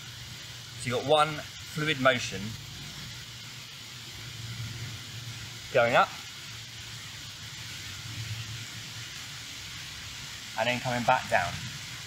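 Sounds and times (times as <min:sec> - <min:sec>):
rain on leaves: 0:00.0 - 0:12.0.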